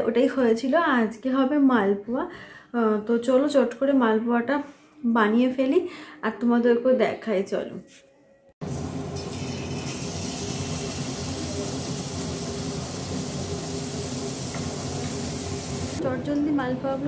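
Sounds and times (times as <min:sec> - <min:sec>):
food sizzling in hot oil: 0:08.6 - 0:16.0.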